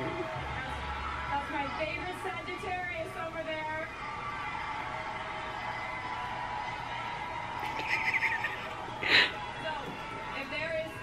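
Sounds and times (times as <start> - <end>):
woman squealing excitedly: 7.6 - 8.7.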